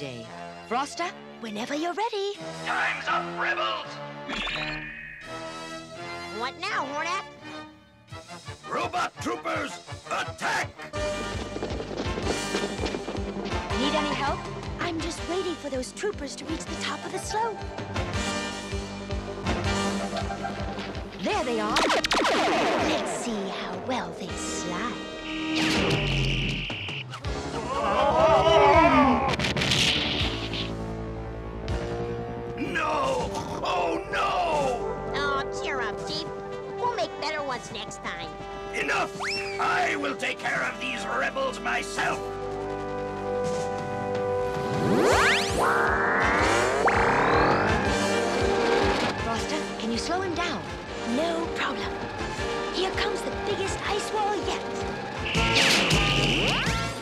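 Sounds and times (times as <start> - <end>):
dramatic cartoon score: 1.0 - 7.6, 13.6 - 31.1, 31.7 - 42.3, 43.2 - 57.0
cartoon music with low drum beat: 12.9 - 27.6, 55.2 - 57.0
falling whistling glides: 25.0 - 27.2
fast rising whoosh: 44.5 - 49.0
wavering electronic tones: 45.0 - 48.8.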